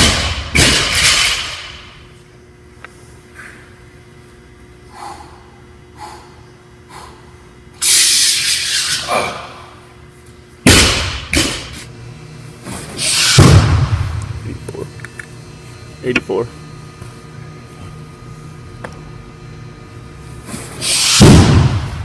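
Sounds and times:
barbell dropped on floor: 0.0s - 1.8s.

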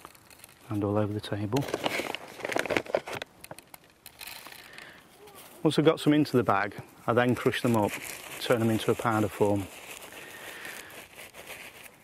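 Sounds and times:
dry pellets pouring and spilling: 0.0s - 2.8s, 7.3s - 12.0s.

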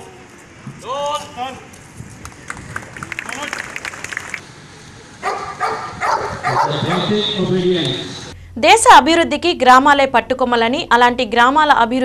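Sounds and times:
dog barking: 5.2s - 7.3s
man's voice: 6.5s - 8.3s.

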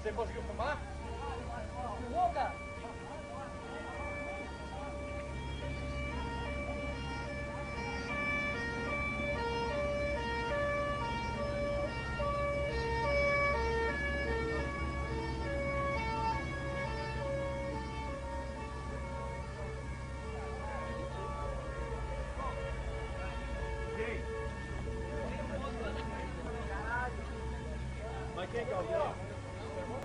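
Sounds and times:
two-tone siren: 0.0s - 30.0s.

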